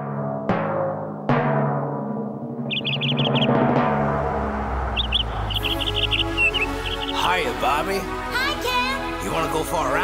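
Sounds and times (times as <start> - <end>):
small birds chirping: 2.7 - 3.6, 4.9 - 8.1.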